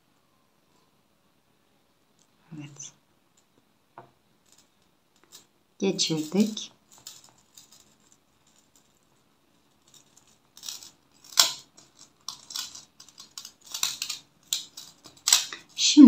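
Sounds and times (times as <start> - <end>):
chain and beads clicking: 6.1 - 15.8.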